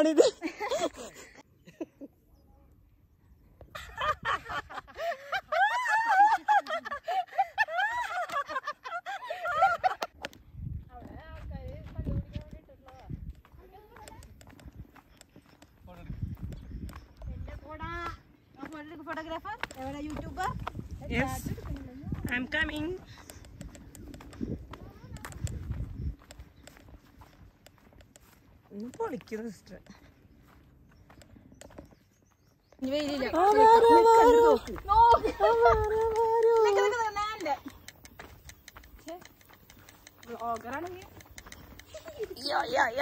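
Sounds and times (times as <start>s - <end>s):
voices talking and calling: 0.0s - 43.0s
footsteps of sandals on rock: 10.2s - 43.0s
wind gusts on microphone: 10.3s - 18.2s, 19.4s - 27.6s, 33.1s - 39.3s
faint clicks: 22.2s - 29.2s, 34.7s - 42.8s.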